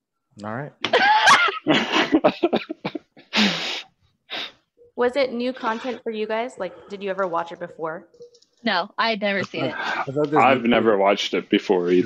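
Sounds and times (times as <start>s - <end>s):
loud laughing: 0.9s - 3.6s.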